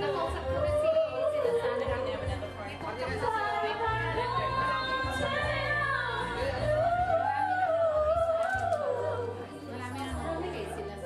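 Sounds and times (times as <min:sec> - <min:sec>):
woman singing into microphone: 0:00.0 - 0:10.6.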